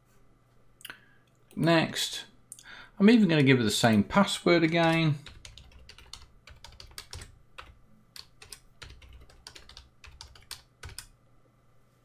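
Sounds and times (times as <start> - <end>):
computer keyboard typing: 4.6 - 11.1.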